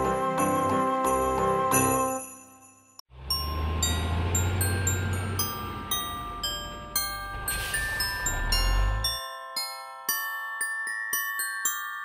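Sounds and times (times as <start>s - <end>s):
christmas music with chiming melody: 0.0s - 12.0s.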